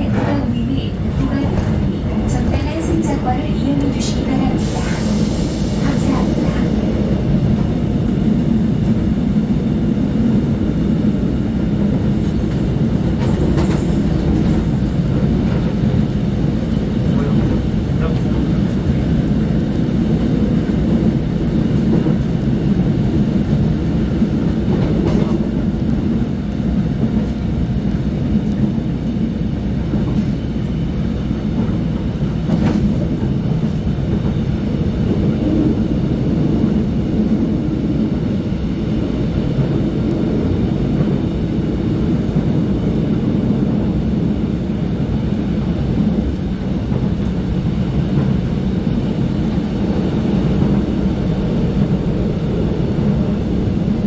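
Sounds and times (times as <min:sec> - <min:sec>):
low rumble of trains: 0:00.0 - 0:54.0.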